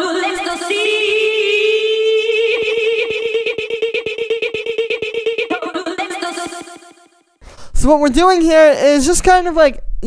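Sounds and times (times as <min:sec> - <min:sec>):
sung vocal sample with echo: 0:00.0 - 0:07.0.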